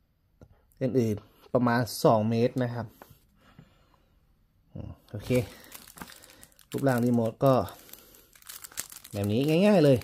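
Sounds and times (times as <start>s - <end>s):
plastic sleeve crinkling: 5.1s - 10.0s.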